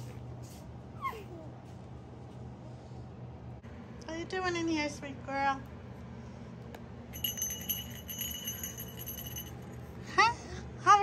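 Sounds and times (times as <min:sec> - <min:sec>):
small toy bell jingling: 0:07.2 - 0:09.8.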